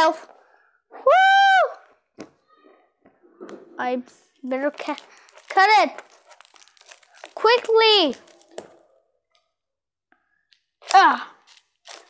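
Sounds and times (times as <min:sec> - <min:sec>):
child shouting: 0:10.9 - 0:11.3.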